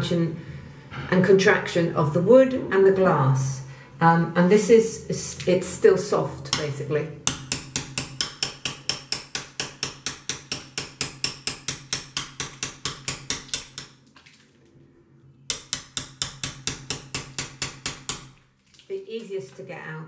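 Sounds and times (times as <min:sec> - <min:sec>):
hammer tapping on knife: 0:07.3 - 0:13.9, 0:15.5 - 0:18.4.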